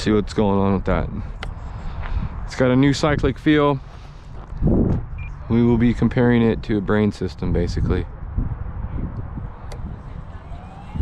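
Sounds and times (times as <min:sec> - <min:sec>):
low windy rumble: 0:00.0 - 0:11.0
electric motor whine rising: 0:09.7 - 0:11.0.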